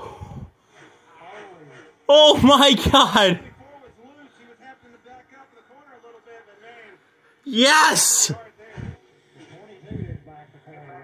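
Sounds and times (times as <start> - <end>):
commentator talking on television: 1.2 - 11.0.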